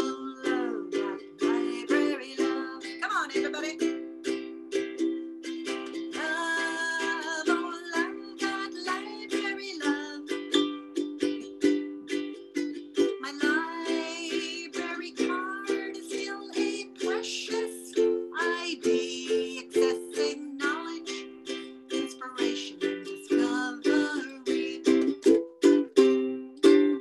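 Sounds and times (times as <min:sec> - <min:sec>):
woman singing: 0:00.0 - 0:03.9, 0:06.1 - 0:10.5, 0:13.1 - 0:25.1
ukulele strummed chords: 0:00.0 - 0:27.0.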